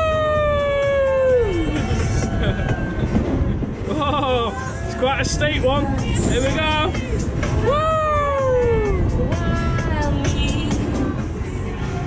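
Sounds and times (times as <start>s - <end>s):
fairground music: 0.0s - 12.0s.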